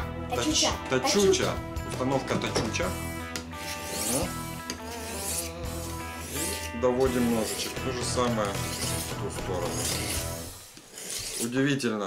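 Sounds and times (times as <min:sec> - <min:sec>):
knife rasping on whetstone: 0:03.6 - 0:11.6.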